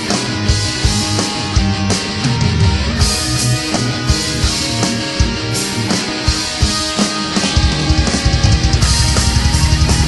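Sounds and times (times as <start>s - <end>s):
loud rock music: 0.0s - 10.0s
fast kick-drum pattern: 6.1s - 10.0s.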